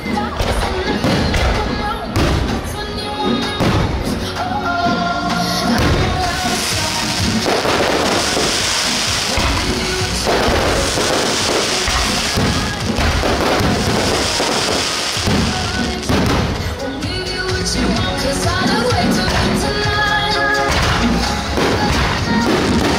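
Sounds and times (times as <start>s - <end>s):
fireworks booming and crackling: 0.0s - 5.0s, 5.6s - 22.9s
music playing: 0.0s - 22.9s.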